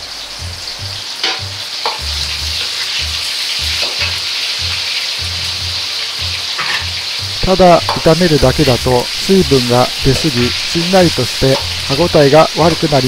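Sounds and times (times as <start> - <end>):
mushrooms deep-frying in oil: 0.0 - 13.0.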